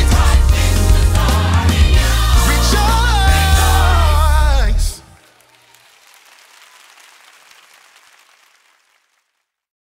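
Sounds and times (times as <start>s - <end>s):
audience applause: 4.9s - 9.4s.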